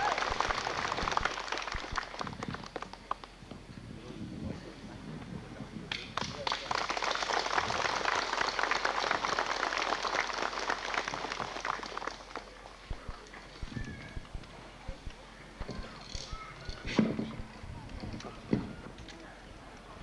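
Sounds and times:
crowd applauding: 0:00.0 - 0:03.4, 0:05.9 - 0:12.9
faint voices: 0:10.7 - 0:20.0.

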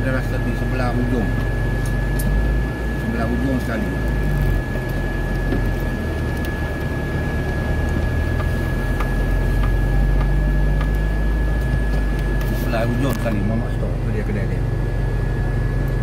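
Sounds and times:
engine and road rumble: 0:00.0 - 0:16.0
thin high-pitched whine: 0:00.0 - 0:16.0.

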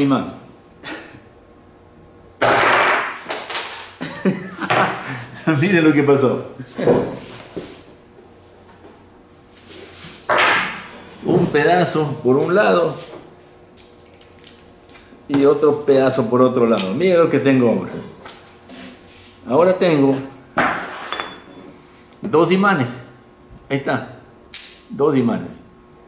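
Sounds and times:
low room hum: 0:00.0 - 0:26.0.

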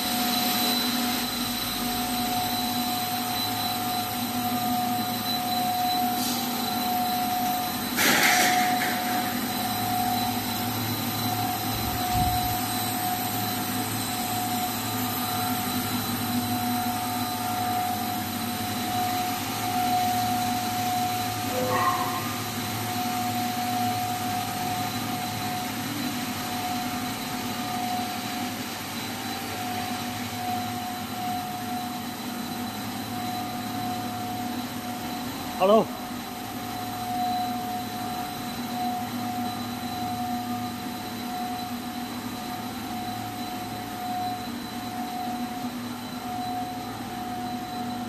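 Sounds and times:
machine hum: 0:00.0 - 0:48.0
mid-pitched whine: 0:00.0 - 0:48.0.

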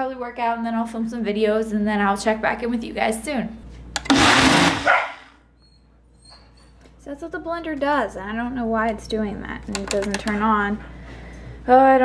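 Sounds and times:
blender motor cutting out: 0:04.0 - 0:05.2.

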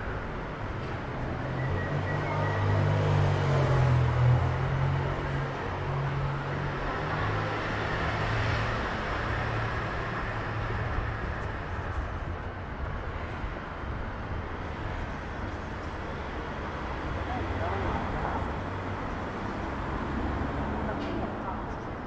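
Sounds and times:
low traffic rumble: 0:00.0 - 0:22.0
indistinct voices of passers-by: 0:00.1 - 0:22.0.

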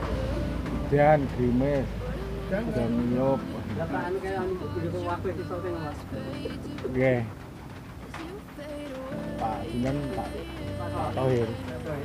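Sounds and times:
low voices: 0:00.0 - 0:12.0.

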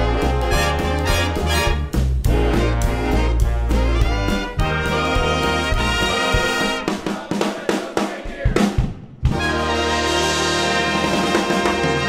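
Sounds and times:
jazz big band playing: 0:00.0 - 0:12.0.

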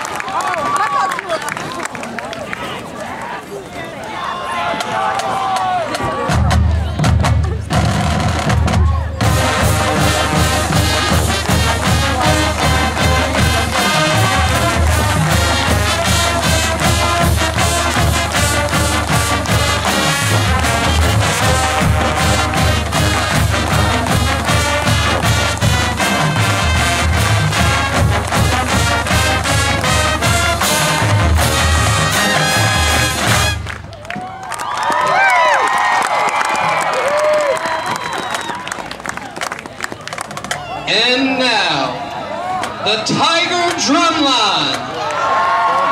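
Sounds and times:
marching band playing: 0:06.0 - 0:34.3, 0:42.8 - 0:44.8
crowd cheering and whistling: 0:33.5 - 0:39.6, 0:44.7 - 0:45.9.

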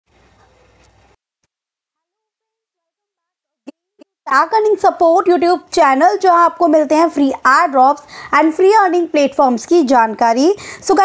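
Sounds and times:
faint humming voice: 0:00.2 - 0:01.0.

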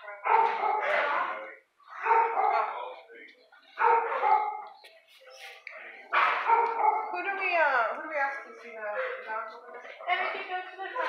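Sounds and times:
dog barking: 0:00.2 - 0:01.2, 0:02.0 - 0:02.8, 0:03.8 - 0:04.8, 0:06.1 - 0:07.2.

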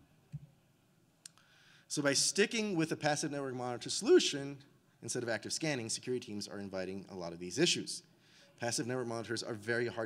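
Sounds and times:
man speaking: 0:01.9 - 0:10.0.

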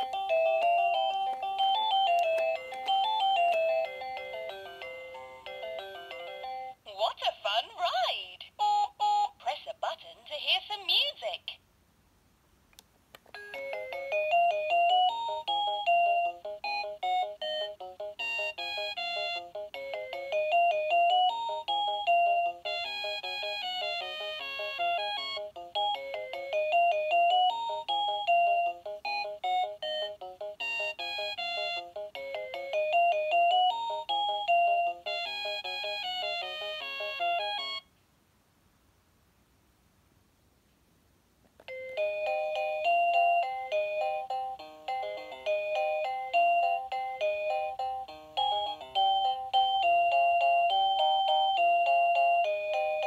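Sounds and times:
toy electronic beeping melody: 0:00.0 - 0:06.8, 0:08.6 - 0:09.4, 0:13.4 - 0:37.9, 0:41.7 - 0:53.0.

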